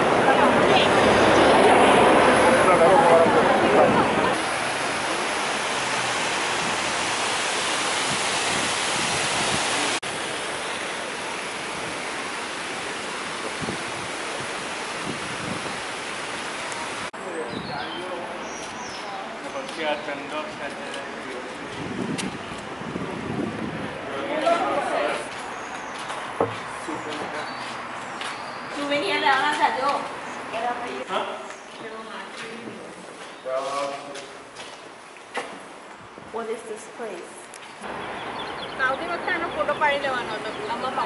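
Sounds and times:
street noise with voices: 0.0 - 7.1, 8.1 - 41.0
fountain water rushing: 0.0 - 17.1
outdoor voices: 0.0 - 41.0.

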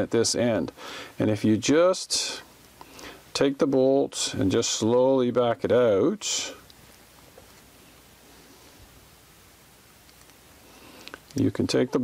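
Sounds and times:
room tone hiss: 0.0 - 12.0.

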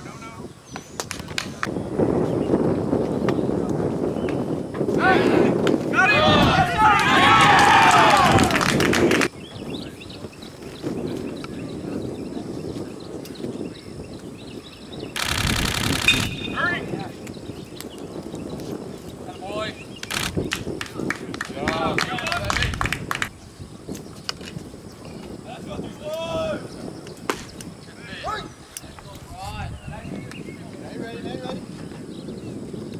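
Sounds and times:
distant voices calling out: 4.8 - 8.7, 27.7 - 31.8
drawn-out shout: 5.0 - 8.7.

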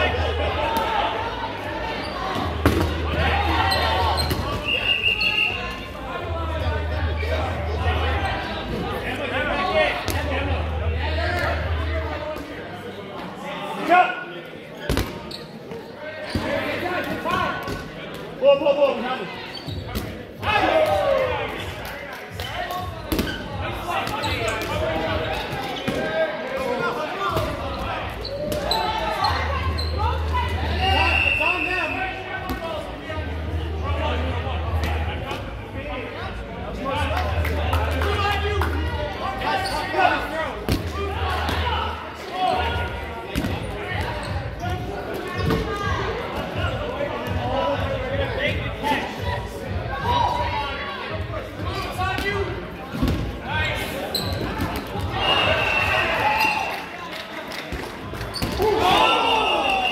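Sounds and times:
players shouting and chattering: 0.0 - 59.9.

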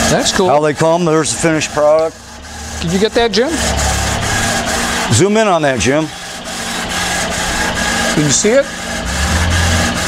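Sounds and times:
laser marking machine hum: 0.0 - 10.0.

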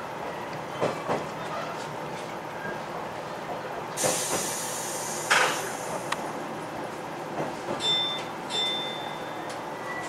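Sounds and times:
railcar rolling: 0.0 - 10.0
air brake hiss: 4.0 - 6.1.

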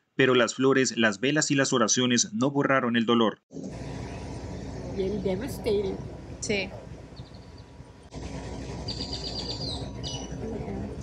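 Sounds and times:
steady background noise: 3.5 - 11.0
small birds chirping: 7.1 - 7.8, 8.8 - 10.6.

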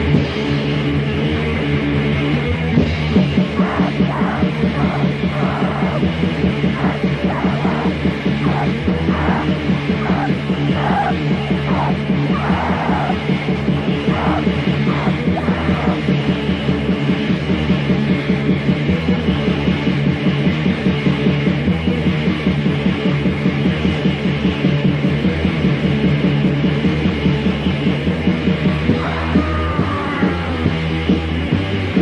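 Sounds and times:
distorted guitar: 0.0 - 32.0
harsh shouted vocal: 3.3 - 16.4, 28.8 - 30.8.

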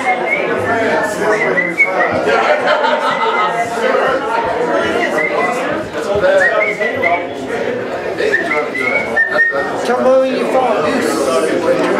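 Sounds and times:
person whistling: 0.0 - 0.6, 1.3 - 2.2, 6.4 - 7.4, 8.2 - 9.8
voices and chatter in a room: 0.0 - 11.9.

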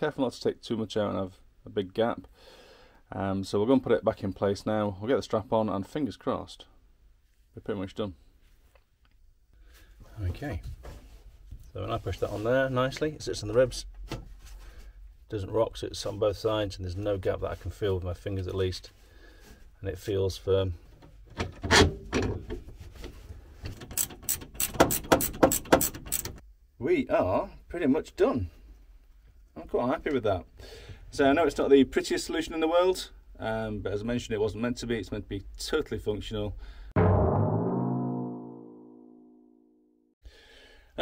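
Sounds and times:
ratchet spanner clicking: 23.7 - 26.4
struck musical chord: 37.0 - 39.8.

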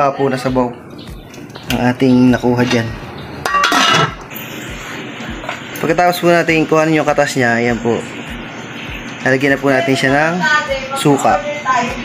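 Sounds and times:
kitchenware clinking: 1.3 - 4.4.

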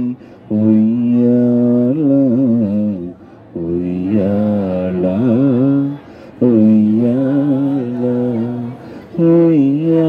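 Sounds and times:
man chanting in song: 0.0 - 10.0.

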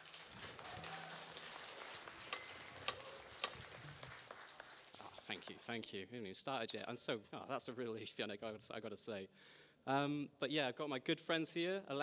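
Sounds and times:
audience applause: 0.0 - 5.5.

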